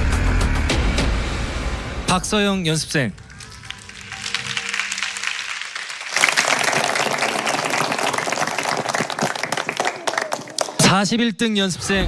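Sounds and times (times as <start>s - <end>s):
crowd applause: 3.2s - 10.9s.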